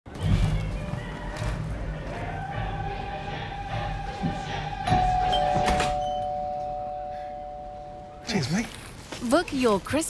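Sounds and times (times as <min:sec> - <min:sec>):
two-note doorbell chime: 0:04.9 - 0:08.2.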